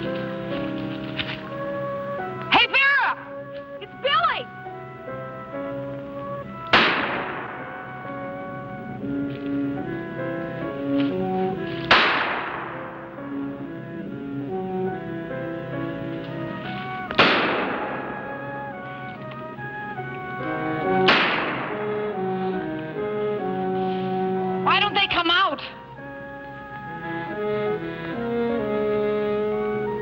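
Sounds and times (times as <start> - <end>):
orchestral held notes: 0.0 - 30.0
gunshots: 6.7 - 8.0, 11.9 - 12.9, 17.1 - 18.5, 21.0 - 22.0.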